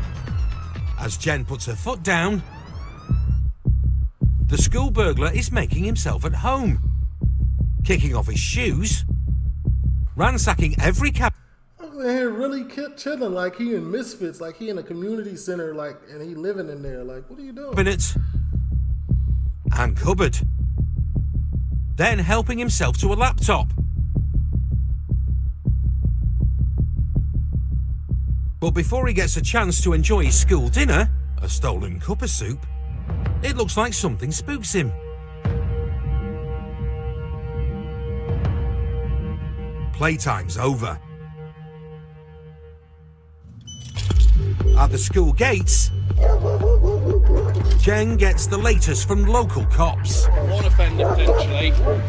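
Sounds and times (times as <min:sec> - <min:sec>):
tense background music: 0:00.0 - 0:11.6, 0:16.8 - 0:52.0
narrator speaking: 0:01.0 - 0:02.5, 0:04.5 - 0:06.9, 0:07.8 - 0:09.0, 0:10.2 - 0:18.3, 0:19.7 - 0:20.5, 0:22.0 - 0:23.8, 0:28.6 - 0:32.7, 0:33.3 - 0:35.0, 0:39.8 - 0:41.2, 0:44.7 - 0:46.0, 0:47.6 - 0:52.0
throbbing bass pulse: 0:03.1 - 0:11.3, 0:17.8 - 0:34.3, 0:44.4 - 0:52.0
dog barking rapidly: 0:46.2 - 0:48.9, 0:50.0 - 0:52.0.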